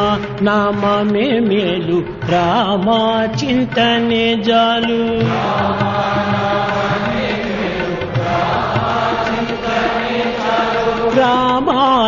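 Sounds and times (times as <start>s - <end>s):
voices chanting together: 5.2s - 11.7s
steady drone: 5.3s - 11.3s.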